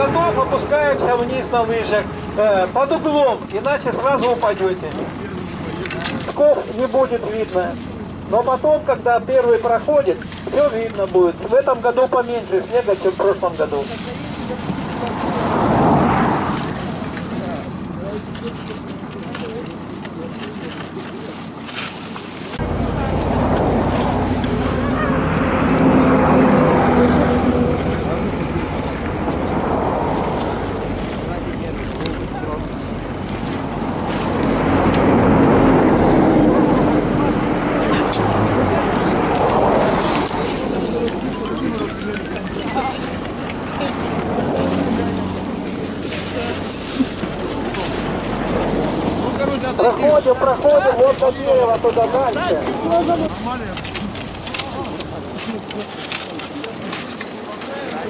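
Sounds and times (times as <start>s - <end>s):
indistinct voices: 0.0s - 58.0s.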